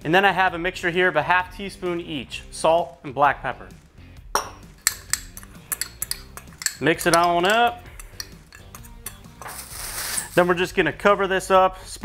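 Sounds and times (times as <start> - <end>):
metal spoon stirring in ceramic bowl: 4.7 - 10.5
light clinks and ticks: 4.8 - 9.2.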